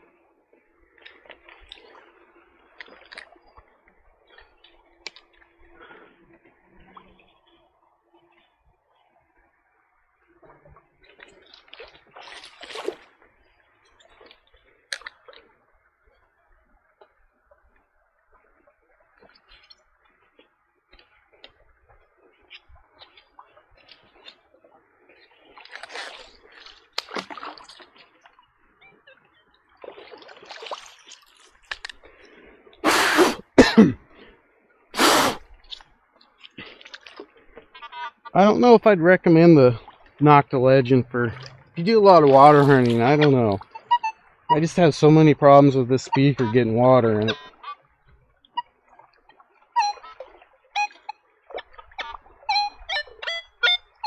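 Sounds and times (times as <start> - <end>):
water sloshing in a creek: 0.0 - 54.0
short blasts of breath: 32.8 - 33.6, 35.0 - 35.5.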